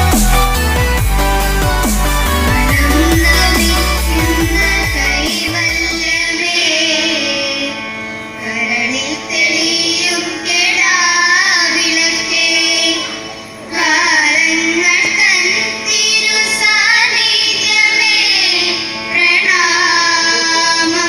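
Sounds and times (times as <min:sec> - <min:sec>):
children singing over a pa system: 0:02.0 - 0:21.0.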